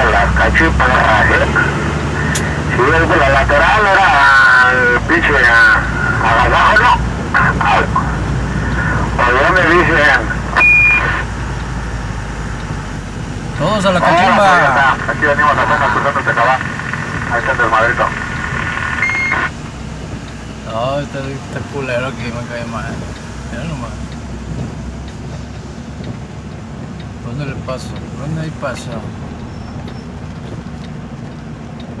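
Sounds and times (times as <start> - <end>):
road noise: 0.0 - 32.0
vehicle driving drone: 0.0 - 32.0
high-pitched electronic beep: 10.6 - 11.3, 18.0 - 19.6.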